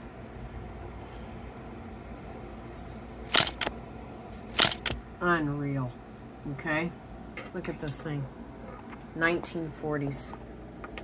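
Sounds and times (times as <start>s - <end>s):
camera shutter clicks: 3.3s - 3.7s, 4.6s - 5.0s.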